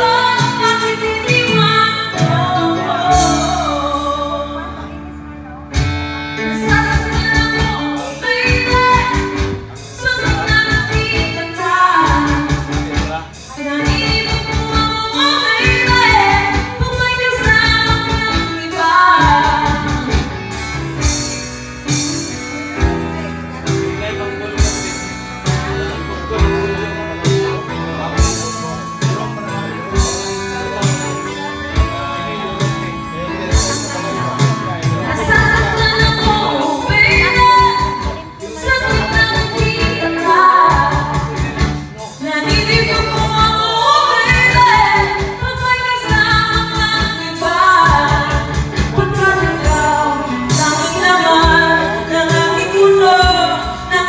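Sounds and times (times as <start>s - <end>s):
woman singing karaoke: 0.0s - 25.0s, 25.6s - 54.0s
backing track with steady beat: 0.0s - 54.0s.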